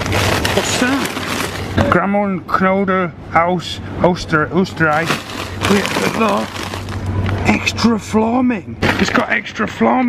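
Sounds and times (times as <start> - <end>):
plastic bag crinkling: 0.0 - 1.8, 4.8 - 7.4
person speaking: 4.4 - 8.5.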